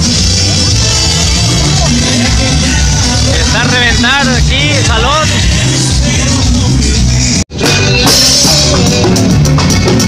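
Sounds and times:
bass line: 0.0s - 10.0s
live band music through speakers: 0.0s - 10.0s
person singing: 0.1s - 9.5s.

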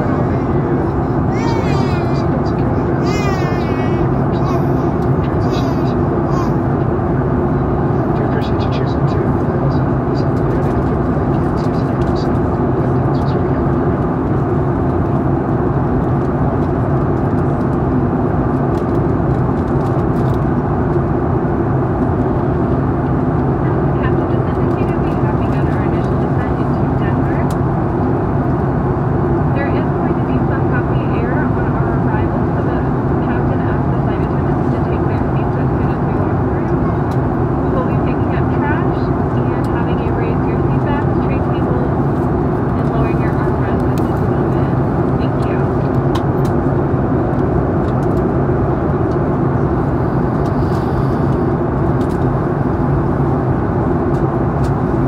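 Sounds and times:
faint passenger voices: 0.0s - 55.0s
jet engines droning: 0.0s - 55.0s.

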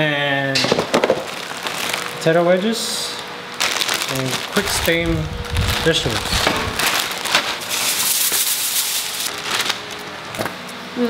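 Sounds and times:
plastic bag crinkling: 1.2s - 2.5s, 3.5s - 10.1s.

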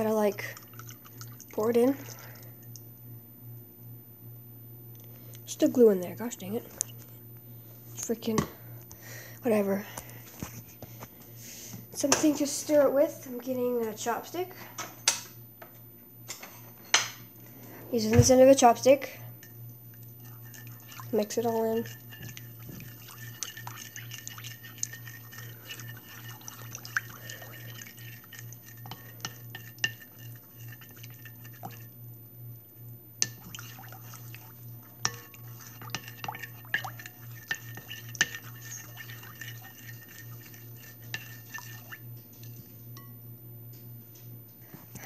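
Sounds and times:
wet stirring of glue: 0.0s - 2.9s, 18.3s - 32.0s, 33.2s - 43.1s.

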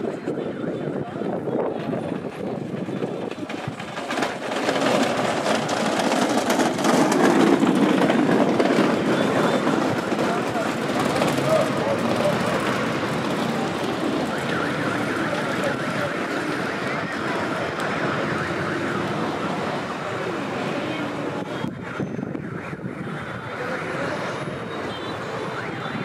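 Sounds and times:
murmur of voices: 0.0s - 26.0s
traffic: 0.0s - 26.0s.

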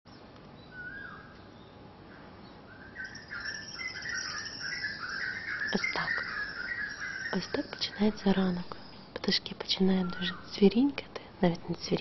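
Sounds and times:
birds chirping and twittering: 0.1s - 11.0s.

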